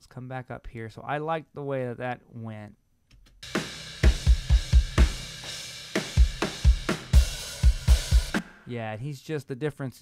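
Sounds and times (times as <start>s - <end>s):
cymbals washing: 3.4s - 8.4s
snare drum strikes: 6.0s - 8.7s.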